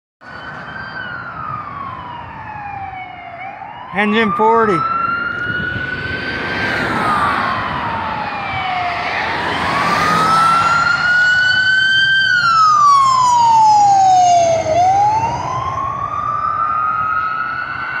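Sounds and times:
fire engine siren wailing: 0:00.2 - 0:18.0.

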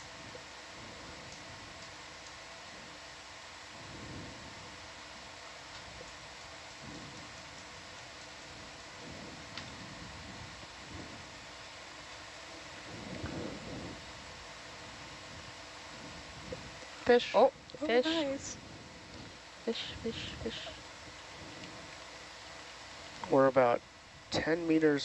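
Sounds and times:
low hiss and hum: 0:00.0 - 0:25.0.

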